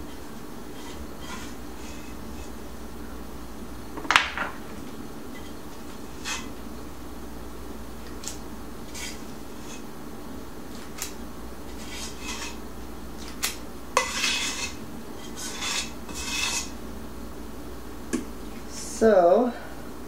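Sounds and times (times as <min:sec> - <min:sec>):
spatula scraping a cookie sheet: 0:00.0 - 0:02.6, 0:05.5 - 0:06.5, 0:08.8 - 0:09.9, 0:10.8 - 0:12.6, 0:13.2 - 0:16.8
steady low hum: 0:00.0 - 0:20.0.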